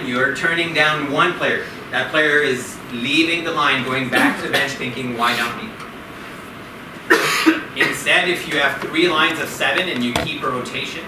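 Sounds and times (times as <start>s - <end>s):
man coughing: 7.1s - 8.2s.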